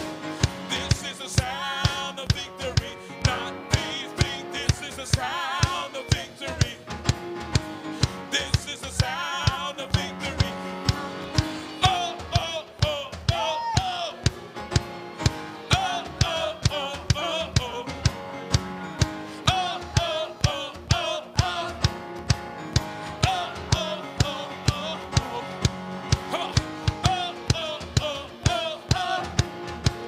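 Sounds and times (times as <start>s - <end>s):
drum kit beat: 0.0s - 30.0s
person singing with vibrato: 8.3s - 14.2s, 23.0s - 29.4s.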